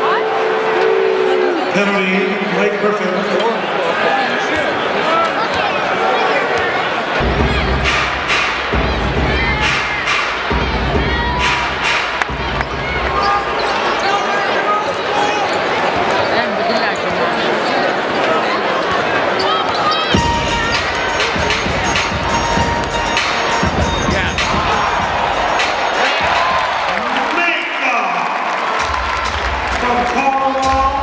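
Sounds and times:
arena crowd noise: 0:00.0 - 0:31.0
bass-heavy music over sound system: 0:07.2 - 0:13.2, 0:20.2 - 0:26.4.

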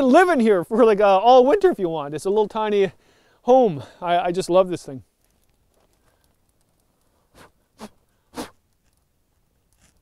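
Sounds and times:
soft crunches: 0:05.1 - 0:10.0.

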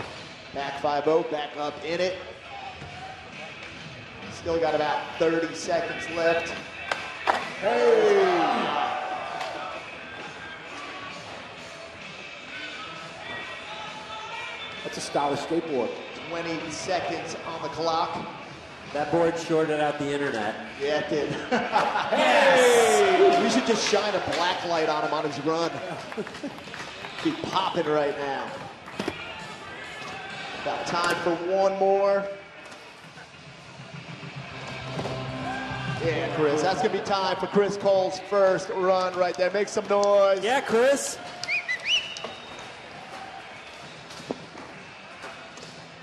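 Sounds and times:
background music: 0:00.0 - 0:46.0
crowd chatter: 0:21.4 - 0:31.4, 0:32.3 - 0:39.8.

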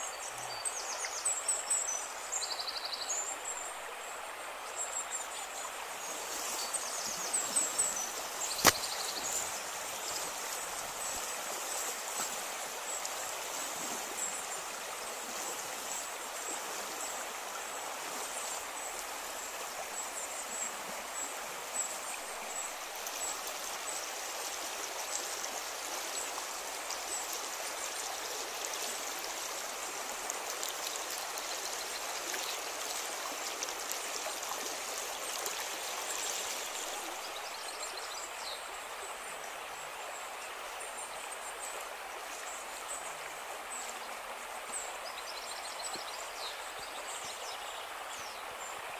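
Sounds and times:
stream running over stones: 0:00.0 - 0:48.9
sharp click: 0:08.6 - 0:08.9.

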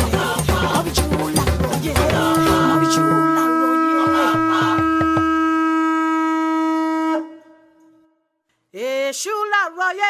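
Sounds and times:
held horn-like wind note: 0:02.3 - 0:08.0.

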